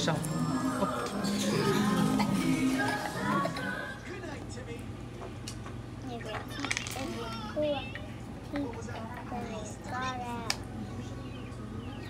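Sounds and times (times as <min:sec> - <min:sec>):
steady low hum: 0:00.0 - 0:12.0
children's voices and chatter: 0:06.0 - 0:12.0.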